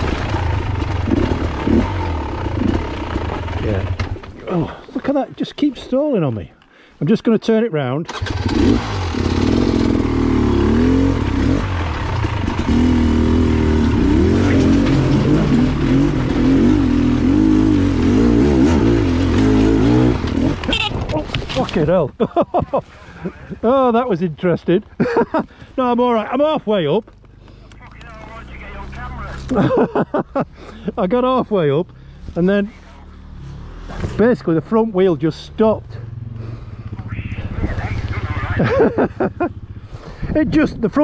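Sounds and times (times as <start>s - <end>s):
dirt bike engine revving: 0.0s - 4.3s, 8.1s - 21.2s
motorcycle engine hum: 0.0s - 5.0s, 8.1s - 41.0s
man speaking loudly: 27.8s - 29.6s, 37.0s - 38.8s.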